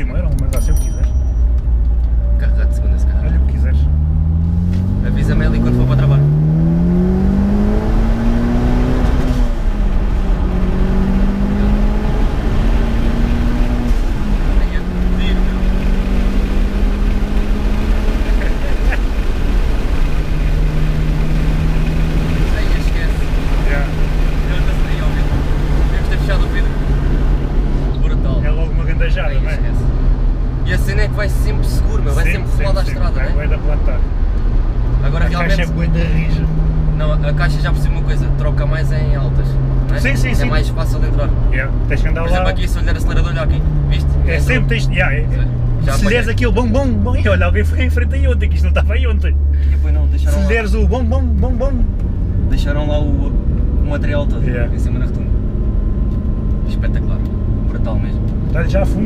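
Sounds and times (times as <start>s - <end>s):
car engine accelerating: 1.4s - 59.0s.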